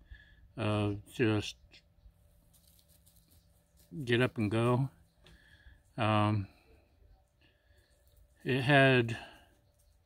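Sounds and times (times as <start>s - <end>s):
man's voice: 4.0s - 4.9s, 6.0s - 6.5s, 8.5s - 9.2s.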